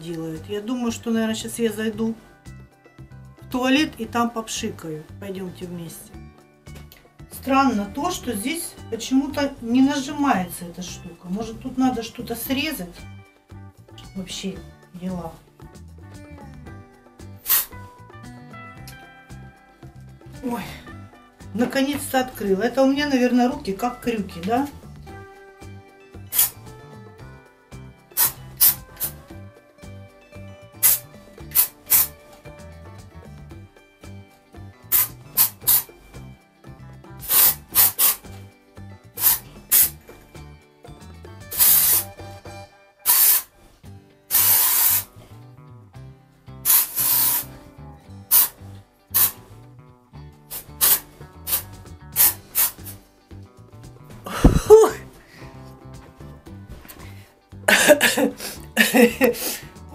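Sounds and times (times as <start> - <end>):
quiet background music: 0.0 - 59.9
aerosol can spraying: 17.4 - 17.8, 26.2 - 26.7, 28.1 - 29.2, 30.8 - 32.2, 34.9 - 35.9, 37.2 - 38.4, 39.2 - 40.0, 41.5 - 42.3, 43.0 - 43.5, 44.3 - 45.2, 46.6 - 47.6, 48.3 - 49.4, 50.5 - 53.0.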